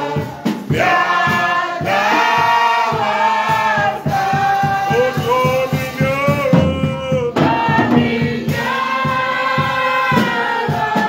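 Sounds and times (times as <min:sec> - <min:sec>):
low percussive beat: 0:00.0 - 0:11.0
voices singing gospel: 0:00.0 - 0:11.0.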